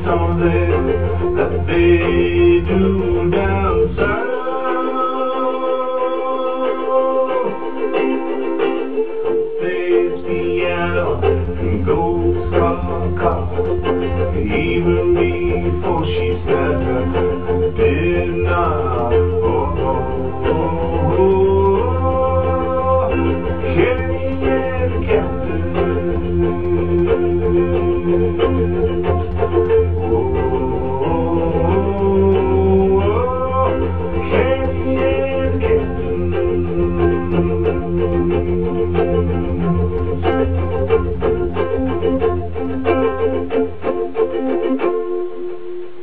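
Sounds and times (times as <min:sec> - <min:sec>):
sustained instrument notes: 0:00.0 - 0:46.0
ukulele strumming: 0:00.0 - 0:46.0.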